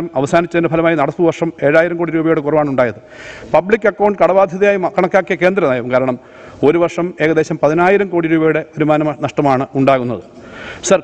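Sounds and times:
man speaking into a microphone: 0:00.0 - 0:11.0.

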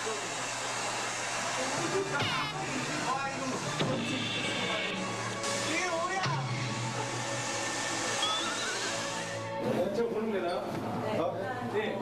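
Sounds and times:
hair dryer blowing: 0:00.0 - 0:09.6.

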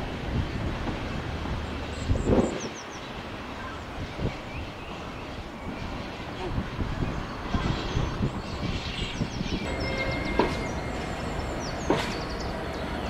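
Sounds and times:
locomotive engine and wheels rumbling: 0:00.0 - 0:13.0
wagons knocking: 0:09.7 - 0:12.4.

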